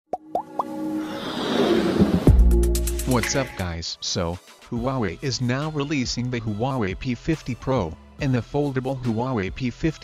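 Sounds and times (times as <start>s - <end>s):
intro music: 1.9s - 4.2s.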